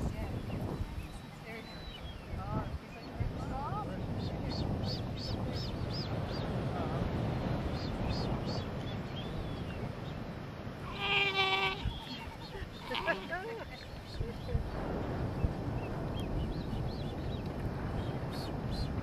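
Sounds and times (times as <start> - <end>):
low background hiss: 0.0 - 14.8
sea lion pup calling: 10.8 - 13.6.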